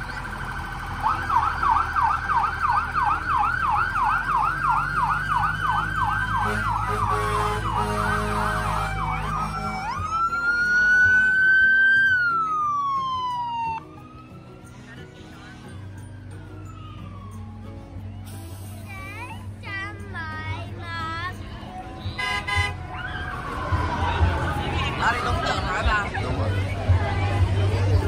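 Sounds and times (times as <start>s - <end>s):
emergency vehicle sirens: 0.0s - 19.6s, 21.5s - 28.0s
low engine rumble: 0.0s - 28.0s.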